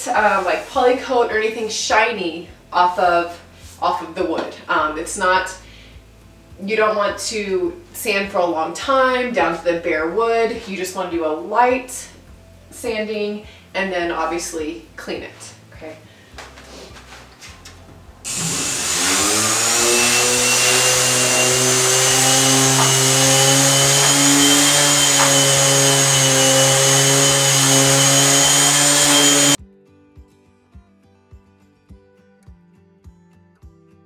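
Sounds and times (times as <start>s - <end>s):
soft music with steady beat: 13.4s - 18.3s, 29.6s - 34.0s
orbital sander whining: 18.3s - 29.6s.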